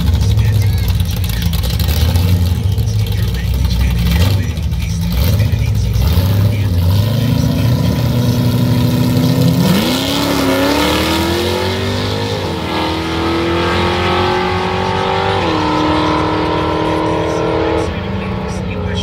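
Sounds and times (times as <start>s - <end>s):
drag racing engines accelerating: 0.0s - 19.0s.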